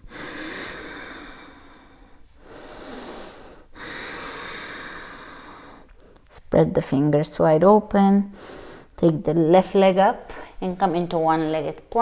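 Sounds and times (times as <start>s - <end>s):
woman breathing deeply: 0.0s - 6.3s, 8.3s - 9.0s.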